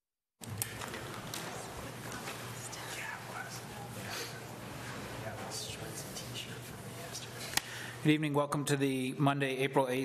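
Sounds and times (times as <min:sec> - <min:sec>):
murmur of people talking: 0:00.4 - 0:10.0.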